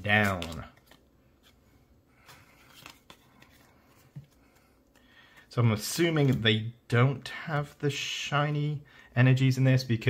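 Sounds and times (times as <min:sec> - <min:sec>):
trading cards rustling: 0:00.0 - 0:06.5.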